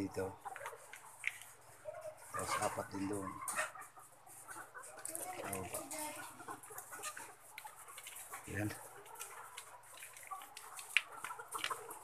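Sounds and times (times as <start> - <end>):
hens clucking softly: 0.0 - 12.0.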